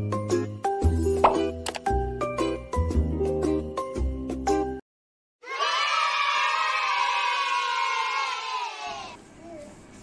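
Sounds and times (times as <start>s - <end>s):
children cheering: 5.4s - 9.2s.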